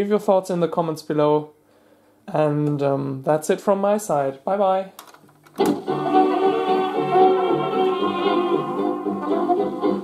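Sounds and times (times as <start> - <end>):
music with sustained notes: 5.6 - 10.0.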